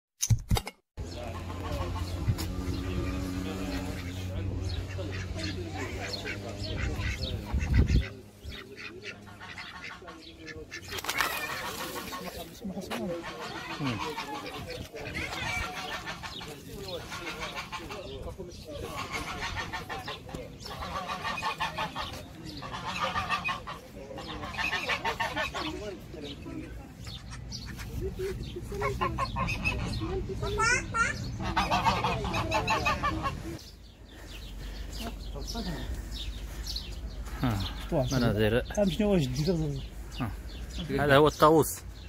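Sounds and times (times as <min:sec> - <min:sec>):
geese honking: 0:01.0 - 0:26.4, 0:27.0 - 0:41.6
ducks quacking: 0:01.0 - 0:42.0.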